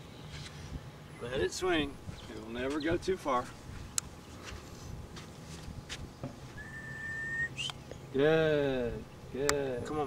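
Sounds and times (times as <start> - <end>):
faint outdoor background noise: 0.0 - 10.0
high whistled note: 6.6 - 7.7.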